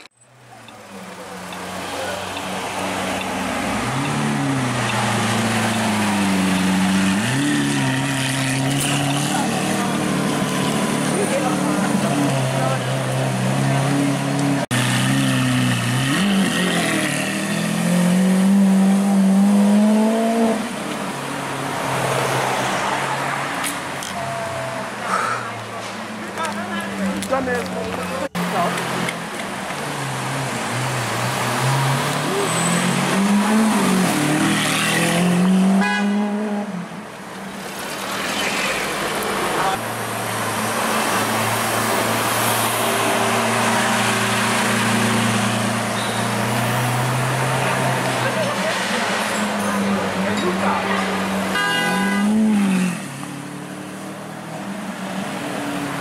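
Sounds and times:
people's voices: 0.0 - 6.5, 8.6 - 14.6, 24.0 - 30.4, 47.4 - 51.6.

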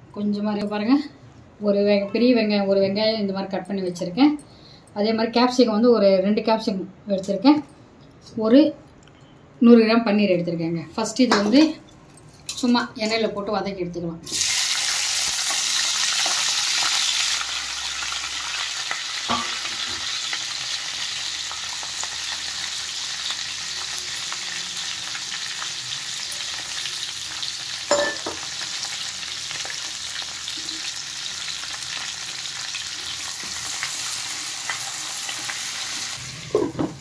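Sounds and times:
vegetables sizzling in oil: 14.3 - 37.0.

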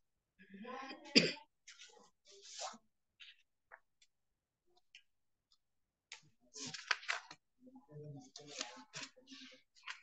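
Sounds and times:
person coughing: 1.1 - 1.5
soft murmur of voice: 6.3 - 10.0.

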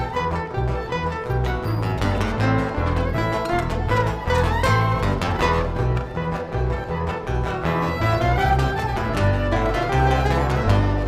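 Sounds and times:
acoustic guitars: 0.0 - 11.0
plucked double bass: 0.0 - 11.0
violin melody: 0.0 - 11.0.

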